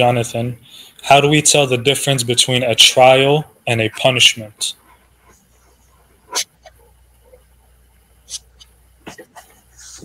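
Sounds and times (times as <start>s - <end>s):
faint video call background noise: 0.0s - 10.0s.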